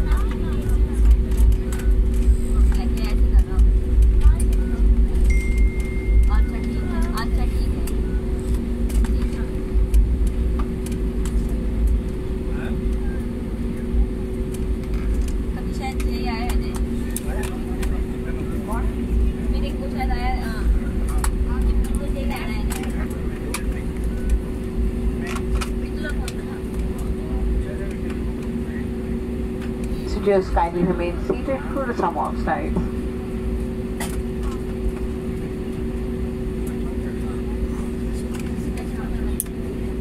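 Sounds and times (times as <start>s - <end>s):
aircraft cabin engine rumble: 0.0s - 40.0s
passengers talking: 0.0s - 40.0s.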